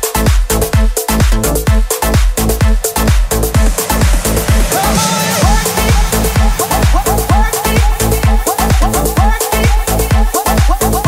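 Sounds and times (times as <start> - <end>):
electronic dance music: 0.0 - 11.0
four-on-the-floor kick drum: 0.0 - 11.0.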